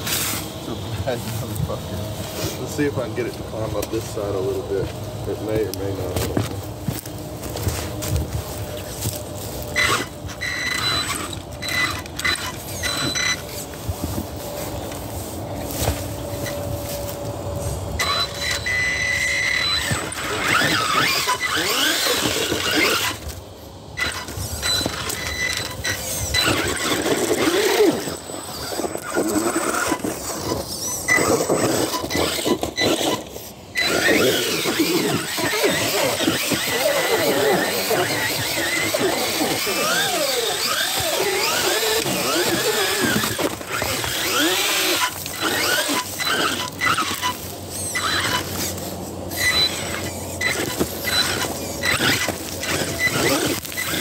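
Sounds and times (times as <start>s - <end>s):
electric motor whining: 0.0s - 54.0s
tires scrabbling on rock: 2.4s - 54.0s.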